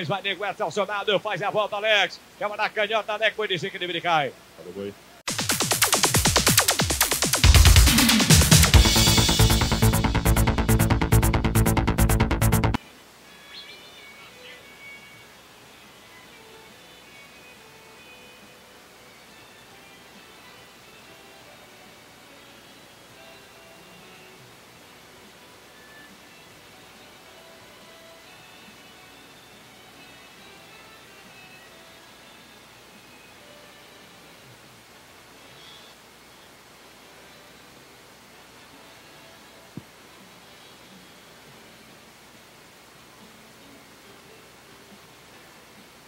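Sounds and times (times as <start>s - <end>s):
arena background noise: 0.0s - 6.0s, 12.8s - 46.0s.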